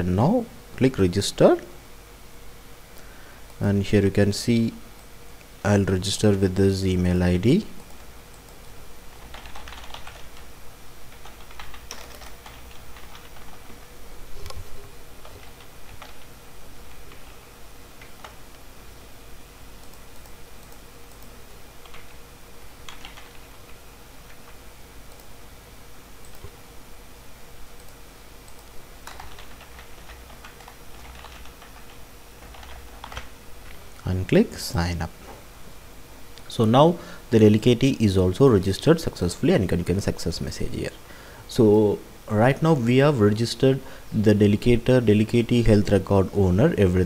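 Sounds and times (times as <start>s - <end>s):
computer keyboard typing: 7.8s - 10.5s, 11.1s - 13.6s, 15.2s - 16.3s, 19.8s - 22.2s, 22.8s - 23.6s, 27.8s - 33.3s.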